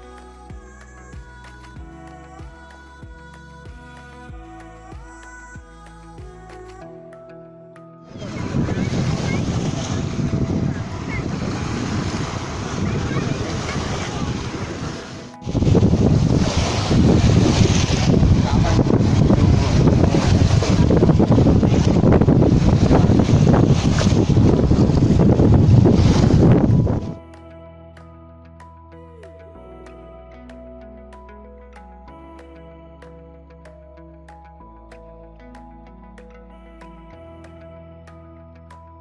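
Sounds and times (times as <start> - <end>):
surf on shore: 8.1 - 27.2
wind on microphone: 8.1 - 27.2.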